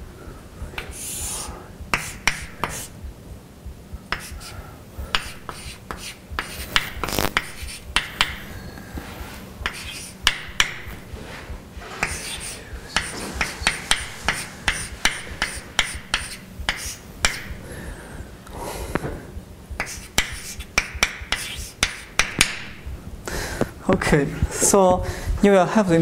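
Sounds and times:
chalk writing on blackboard: 0.8 - 3.0, 4.0 - 17.6, 19.8 - 22.8.

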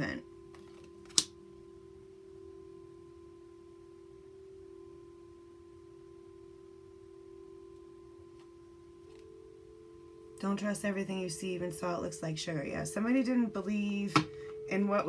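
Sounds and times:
ambient music sustained tones: 0.0 - 15.0.

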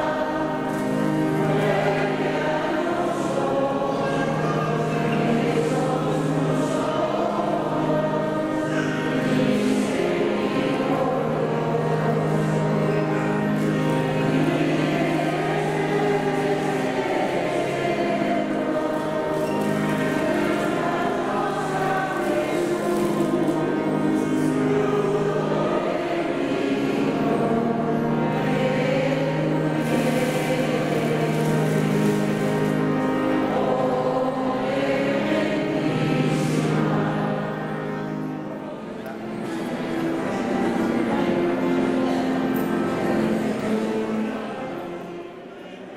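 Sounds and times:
congregation singing a hymn: 0.0 - 45.9
religious choral music: 0.0 - 45.9.

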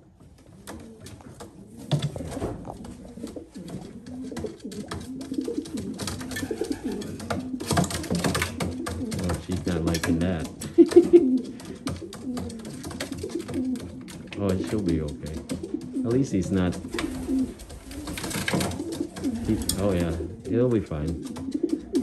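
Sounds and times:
birds rustling in cage: 0.0 - 22.0
pigeon cooing: 0.0 - 22.0.

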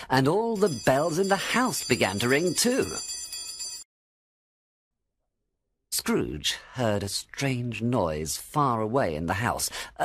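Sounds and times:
bells ringing: 0.4 - 3.9.

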